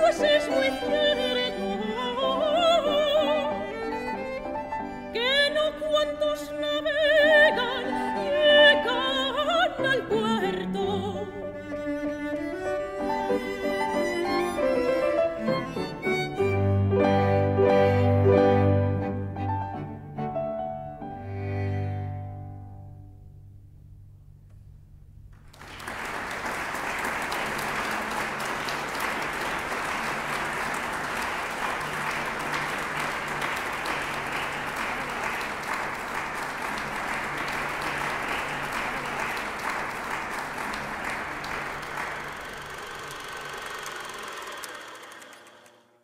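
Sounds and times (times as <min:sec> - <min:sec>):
audience applauding: 0:13.1 - 0:16.6, 0:25.4 - 0:45.9.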